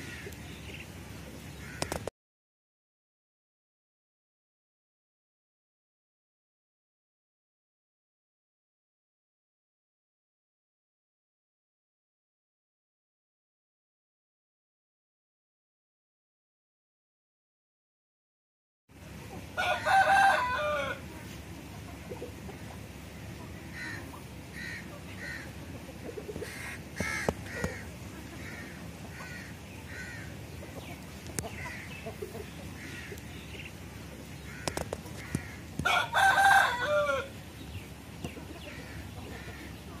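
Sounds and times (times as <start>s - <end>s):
faint hen clucks: 19.1s - 37.4s, 38.2s - 40.0s
rooster crowing: 19.6s - 21.0s, 35.2s - 37.4s.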